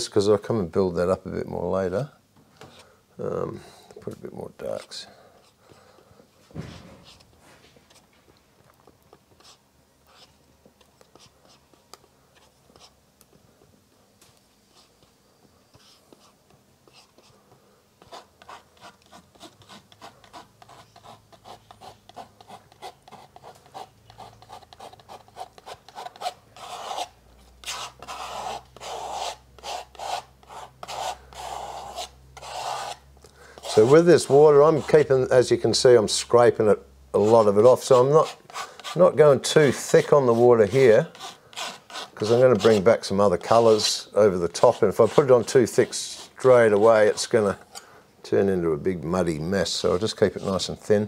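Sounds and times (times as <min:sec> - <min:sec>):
palette knife scraping canvas: 0:18.0 - 0:33.0, 0:33.6 - 0:35.1, 0:37.2 - 0:47.7.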